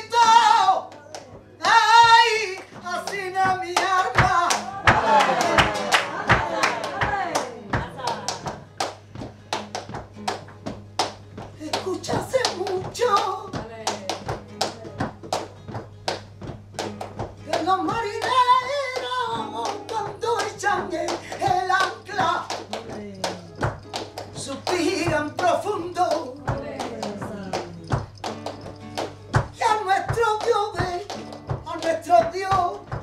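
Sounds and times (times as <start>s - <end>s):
hand claps: 0.0s - 33.0s
woman singing flamenco: 0.0s - 33.0s.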